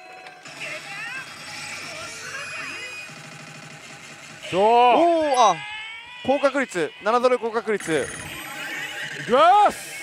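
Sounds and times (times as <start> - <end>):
slot machine warbling chirps: 0.4 - 5.7, 7.8 - 10.0.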